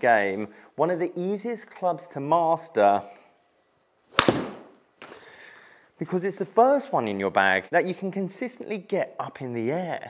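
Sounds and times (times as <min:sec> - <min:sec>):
ball hitting impact screen: 0:04.1 - 0:04.8
golf iron striking ball: 0:04.1 - 0:04.8.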